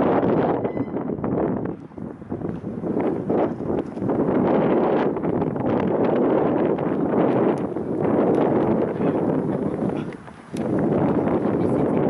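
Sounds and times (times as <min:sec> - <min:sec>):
strong wind on microphone: 0:00.0 - 0:12.0.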